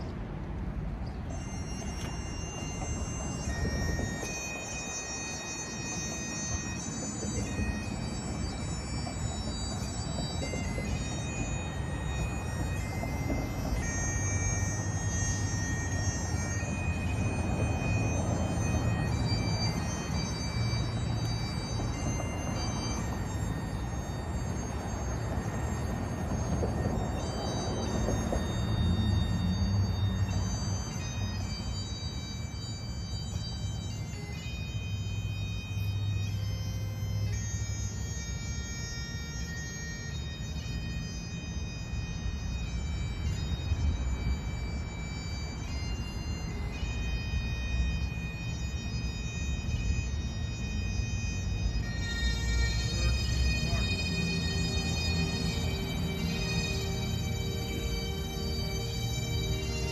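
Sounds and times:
bagpipes playing slow tune: 0.0s - 59.9s.

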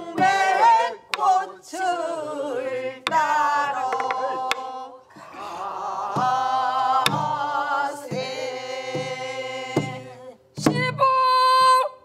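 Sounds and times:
person singing folk song with vibrato: 0.0s - 12.0s
barrel drum strokes: 6.0s - 11.0s.

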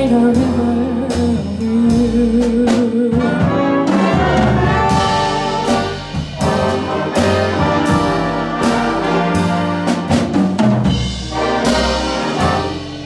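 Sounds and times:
jazz big band playing: 0.0s - 13.0s
drum hits: 3.2s - 13.0s.

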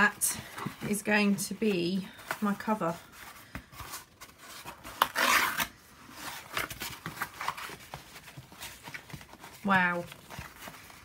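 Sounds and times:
cardboard crackling: 0.0s - 11.0s
cardboard rustling and scraping: 0.0s - 11.0s.

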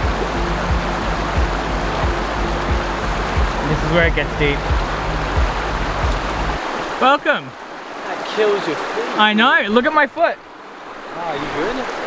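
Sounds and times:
background music with soft beat: 0.0s - 6.6s
river rushing over rocks: 0.0s - 12.0s.

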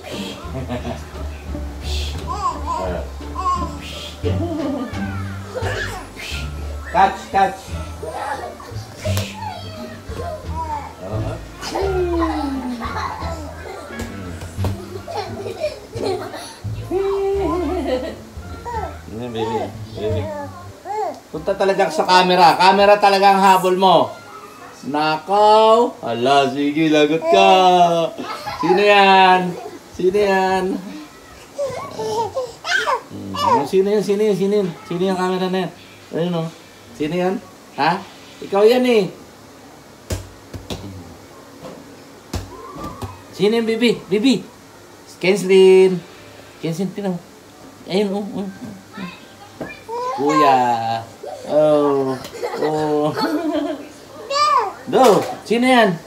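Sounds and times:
young children calling and babbling: 0.0s - 21.4s, 23.5s - 25.3s, 30.7s - 35.4s, 42.3s - 43.4s, 48.3s - 54.9s.

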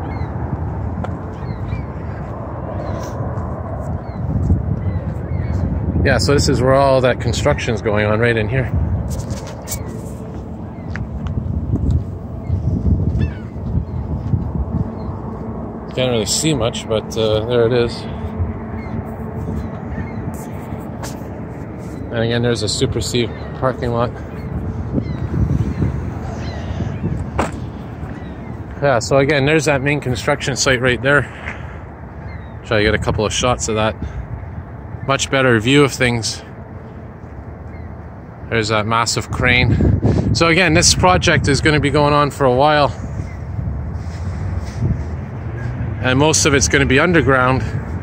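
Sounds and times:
low road rumble: 0.0s - 48.0s
faint short bird calls: 24.2s - 28.5s.

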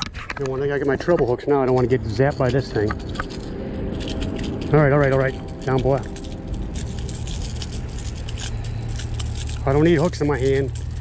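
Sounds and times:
steady low rumble: 0.0s - 11.0s
fishing hooks clicking and scraping: 0.4s - 11.0s.

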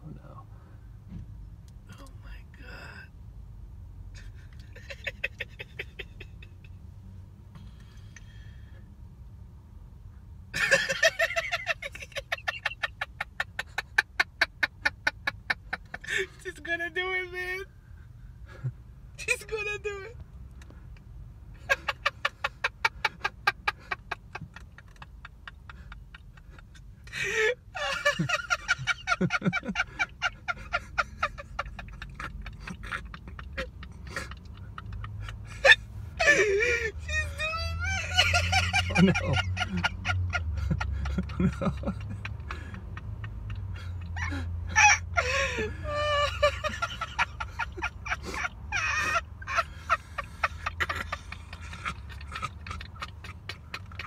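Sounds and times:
low steady rumble: 0.0s - 54.0s
stifled breathy laughter: 21.6s - 54.0s.

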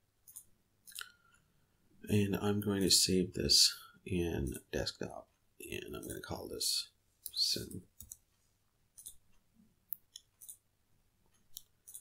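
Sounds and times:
computer mouse clicks: 0.2s - 1.2s, 8.0s - 8.3s, 8.9s - 10.7s, 11.3s - 12.0s.

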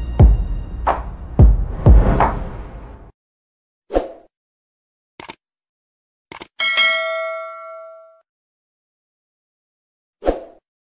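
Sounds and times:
double-click sound effects: 5.2s - 5.4s, 6.3s - 6.6s
notification bell ding: 6.6s - 8.2s.

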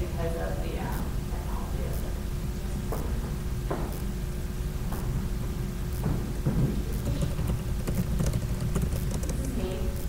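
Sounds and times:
low room rumble: 0.0s - 10.0s
thin steady hum: 0.0s - 10.0s.

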